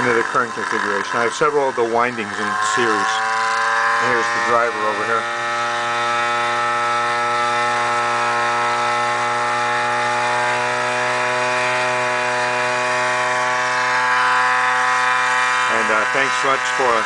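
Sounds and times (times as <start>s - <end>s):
pulse motor whining: 0.0s - 17.0s.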